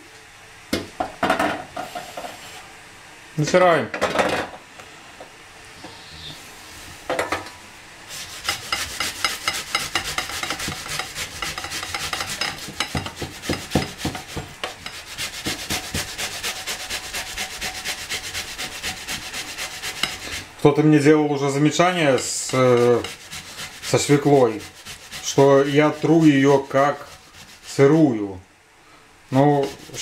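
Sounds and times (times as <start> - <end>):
grating on a metal grater: 8.1 - 20.5, 21.7 - 28.0, 29.6 - 30.0.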